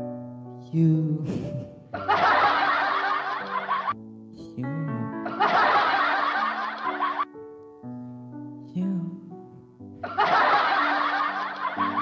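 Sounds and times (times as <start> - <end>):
piano backing track: 0.0 - 12.0
laughter: 2.0 - 4.0, 5.2 - 7.3, 10.0 - 12.0.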